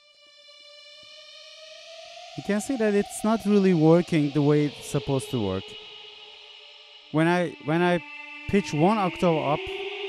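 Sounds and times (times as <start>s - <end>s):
synthesizer note gliding upward: 0.0s - 10.0s.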